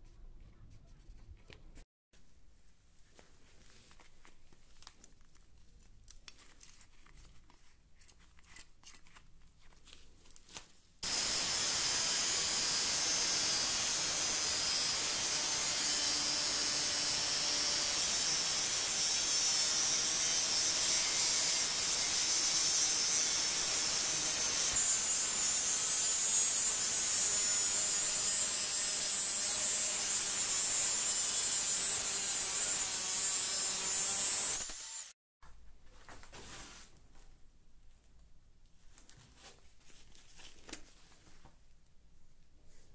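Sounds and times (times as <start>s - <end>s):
faint handling sounds: 2.5s - 11.0s, 35.6s - 42.9s
angle grinder cutting steel: 11.0s - 35.2s.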